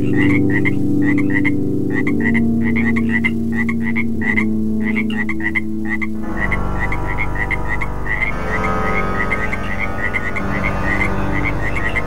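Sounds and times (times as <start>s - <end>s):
frog croaking: 0.0s - 12.0s
low synthesizer drone: 0.0s - 12.0s.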